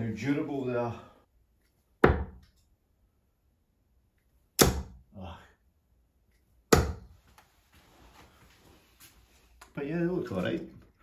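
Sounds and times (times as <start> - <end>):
darts hitting dartboard: 2.0 - 2.5, 4.6 - 5.0, 6.7 - 7.2.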